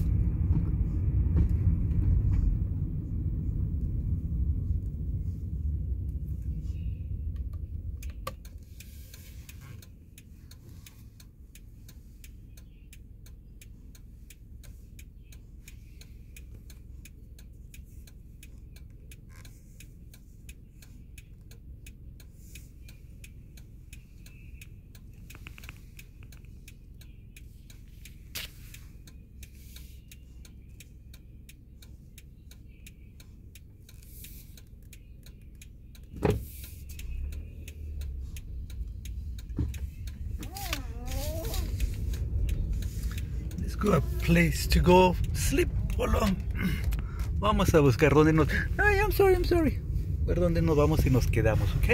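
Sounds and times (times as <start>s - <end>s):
car rumble from inside: 0.0s - 51.9s
quiet regular ticking: 3.6s - 51.9s.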